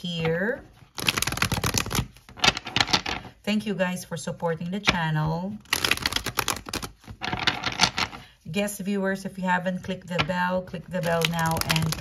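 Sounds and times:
cards being shuffled: 0.1 - 3.3, 5.5 - 8.2, 10.9 - 12.0.

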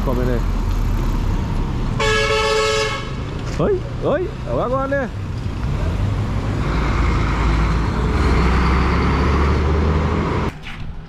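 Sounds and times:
passing road traffic rumble: 0.0 - 11.0
vehicle horn: 2.0 - 3.2.

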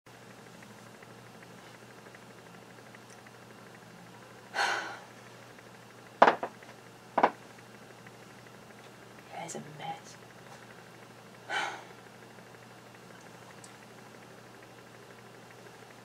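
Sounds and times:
woman's breathy exhale: 4.6 - 5.1, 11.5 - 12.0.

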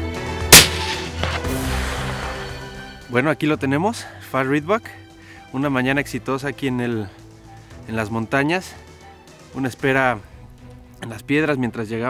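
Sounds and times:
background music: 0.0 - 12.0
rifle shot: 0.5 - 2.4.

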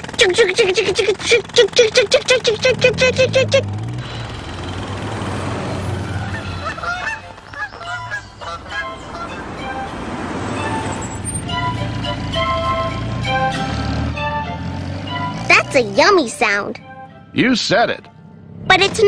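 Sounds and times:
cartoon jackhammer pounding: 0.0 - 8.1
car engine running: 0.0 - 19.0
ice cream truck jingle: 0.0 - 19.0.

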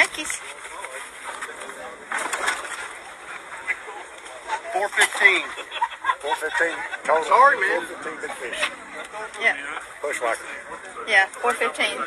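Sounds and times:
indistinct talk: 0.0 - 12.0.

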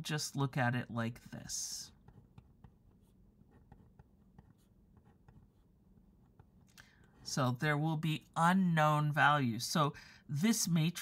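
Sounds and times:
marker writing on paper: 1.9 - 6.6.

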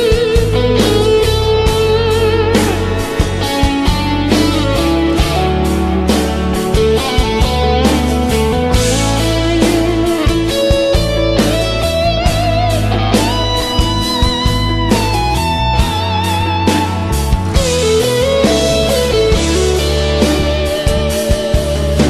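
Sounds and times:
gospel backing track: 0.0 - 22.0
lead guitar melody with vibrato: 0.0 - 22.0.

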